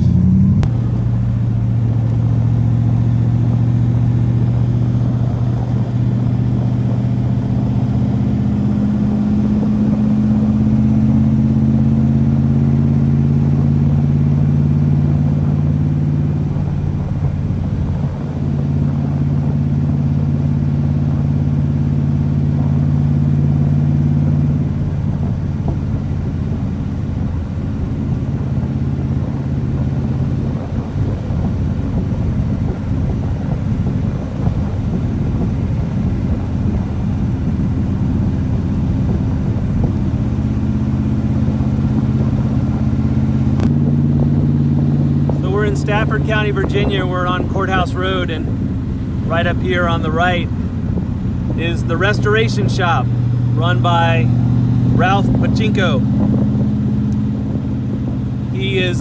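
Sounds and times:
car engine driving: 0.0 - 59.0.

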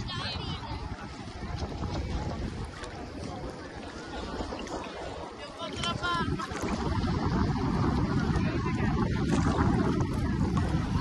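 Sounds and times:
sea water sloshing and lapping: 0.0 - 11.0
wind noise: 0.0 - 11.0.

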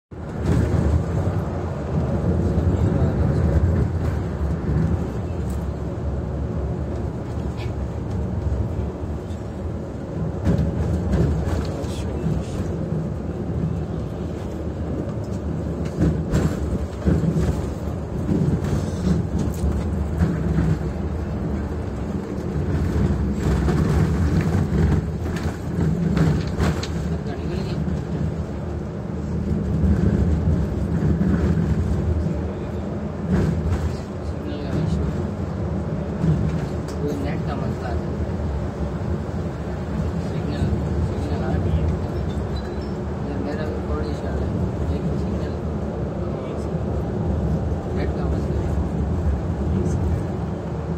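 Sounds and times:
coach engine and road noise: 0.1 - 50.9.

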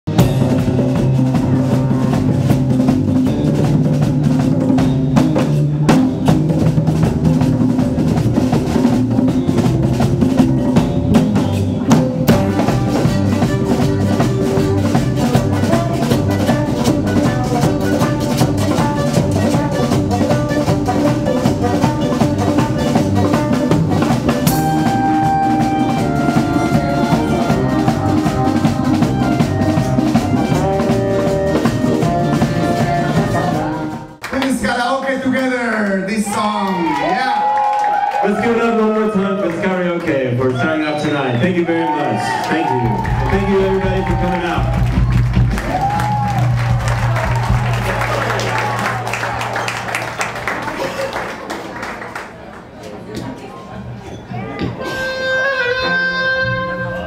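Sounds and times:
live cumbia band: 0.1 - 35.2, 36.0 - 51.7, 52.3 - 57.0.

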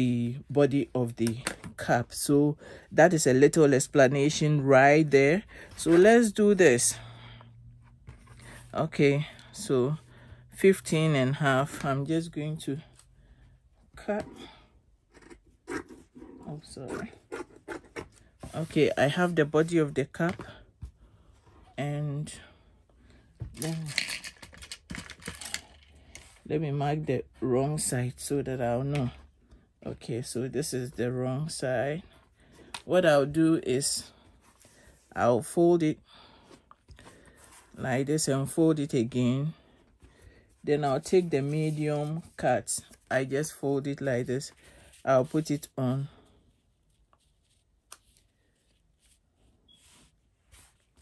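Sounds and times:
faint rustling of paper and fabric: 5.4 - 10.5, 11.3 - 27.5, 33.8 - 35.4, 36.2 - 38.2, 38.8 - 51.0.

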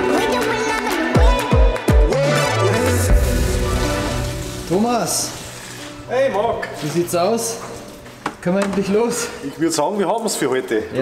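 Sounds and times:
faint music: 3.3 - 11.0.

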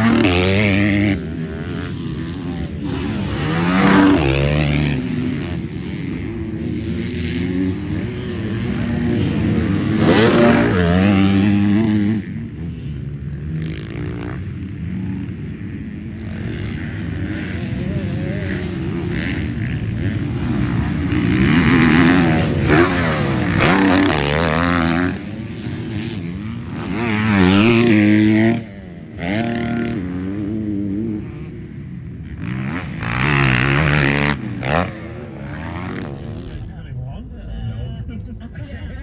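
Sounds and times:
dirt bike engine revving: 0.0 - 37.9.

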